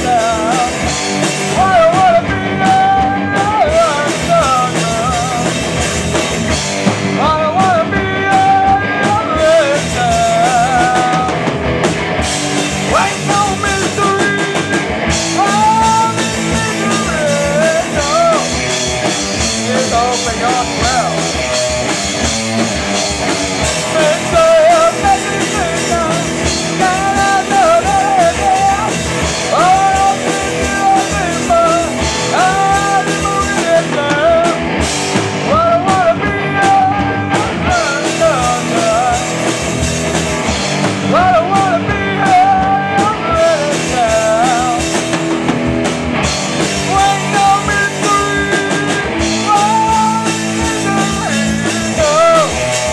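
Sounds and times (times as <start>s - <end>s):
lead singer's voice: 0.0s - 52.9s
live rock band: 0.0s - 52.9s.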